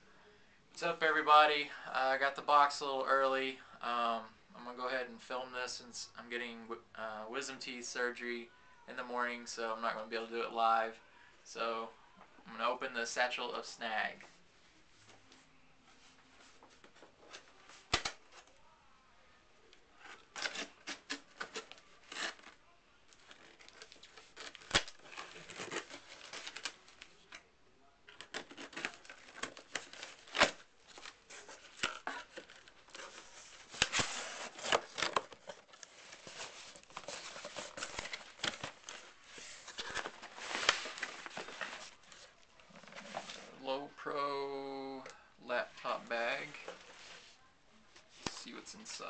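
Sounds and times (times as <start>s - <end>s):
plastic wrap crinkling: 20.0s - 27.4s, 28.1s - 43.6s.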